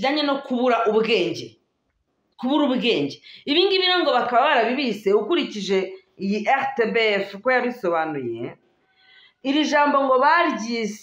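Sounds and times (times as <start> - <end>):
woman speaking expressively: 0.0 - 1.7, 2.4 - 8.7, 9.4 - 11.0.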